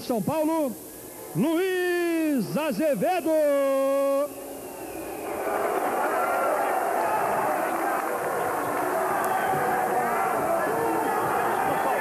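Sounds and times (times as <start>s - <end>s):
crowd shouting and cheering: 4.4s - 12.0s.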